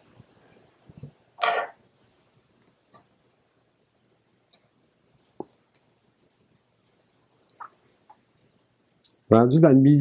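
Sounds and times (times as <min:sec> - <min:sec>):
small ticks and knocks of hands: 0:05.4 - 0:06.2.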